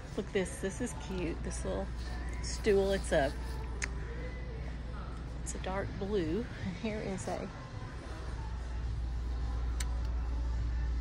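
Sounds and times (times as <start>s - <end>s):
shop background hum: 0.0s - 11.0s
faint click: 9.8s - 10.2s.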